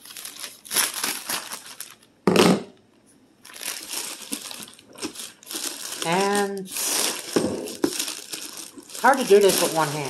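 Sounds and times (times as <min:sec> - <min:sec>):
plastic bag crinkling: 0:00.0 - 0:02.2, 0:03.4 - 0:10.0.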